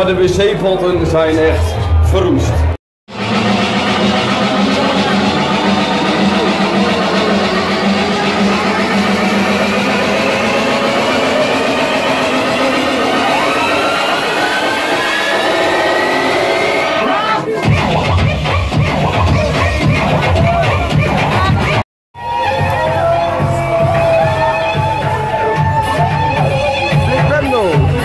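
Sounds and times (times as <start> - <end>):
electronic dance music: 0.1 - 28.0
steady low drone: 3.1 - 16.8
tone rising in pitch: 3.1 - 17.2.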